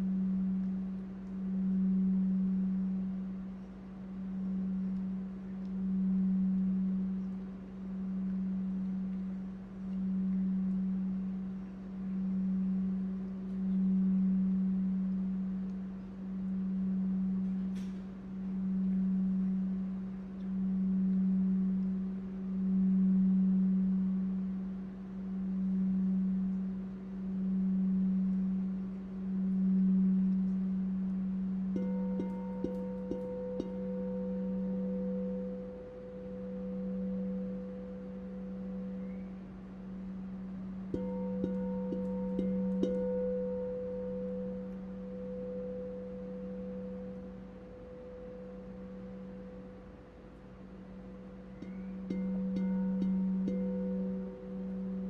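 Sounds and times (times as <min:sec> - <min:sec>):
singing bowl low hum: 0:00.0 - 0:55.0
mallet tapping singing bowl: 0:27.6 - 0:39.4, 0:40.8 - 0:49.9, 0:51.0 - 0:55.0
high ringing tone: 0:31.8 - 0:39.4, 0:40.9 - 0:50.1, 0:51.0 - 0:55.0.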